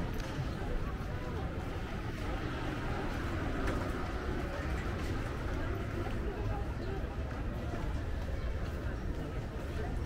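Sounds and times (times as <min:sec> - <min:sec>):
indistinct voices of passers-by: 0:00.0 - 0:10.0
traffic rumble: 0:00.0 - 0:10.0.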